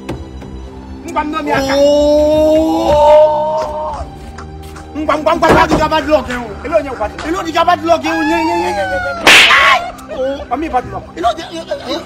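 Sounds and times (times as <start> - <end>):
man crying out: 8.1 - 10.4
loud slap: 9.2 - 9.8.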